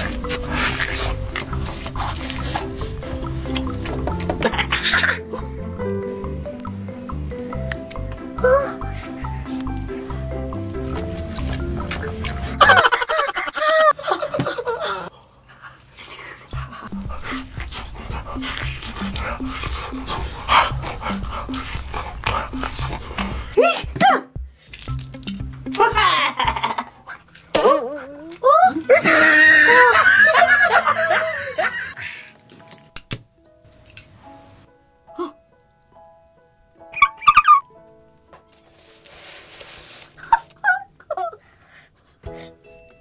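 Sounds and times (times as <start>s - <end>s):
wet biting and gnawing: 0.0s - 4.5s, 15.6s - 24.0s, 24.6s - 25.8s
background music: 0.0s - 15.1s, 16.4s - 43.0s.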